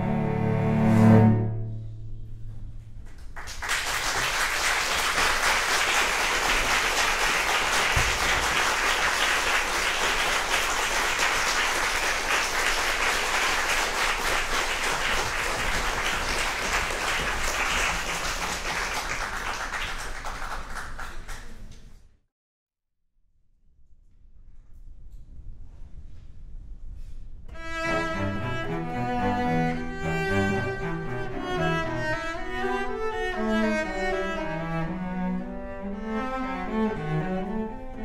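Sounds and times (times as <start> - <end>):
bowed cello chord: 0.0 - 2.3, 27.5 - 38.0
audience applause: 3.2 - 21.7.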